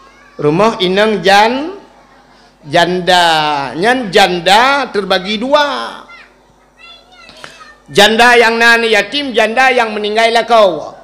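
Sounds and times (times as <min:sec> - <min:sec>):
faint children's voices: 0:00.0 - 0:02.8, 0:05.0 - 0:07.9
man's amplified voice: 0:00.4 - 0:01.9, 0:02.6 - 0:06.2, 0:07.9 - 0:11.0.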